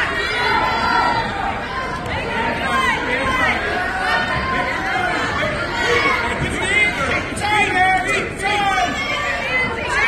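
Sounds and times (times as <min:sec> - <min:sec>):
crowd chatter and calls: 0:00.0 - 0:10.0.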